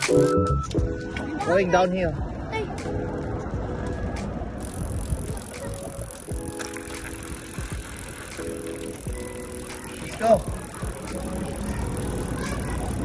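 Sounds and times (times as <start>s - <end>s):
background music: 0.0s - 13.0s
bike tyre rumble on pavement: 4.6s - 13.0s.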